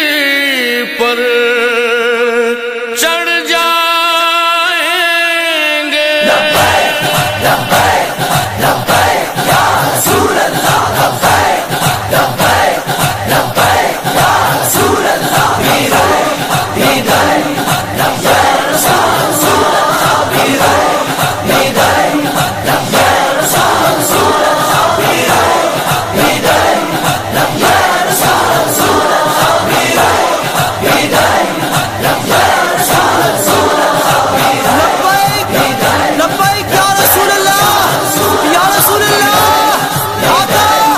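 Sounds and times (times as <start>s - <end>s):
men chanting together: 0.0s - 40.9s
steady regular beat: 6.3s - 40.9s.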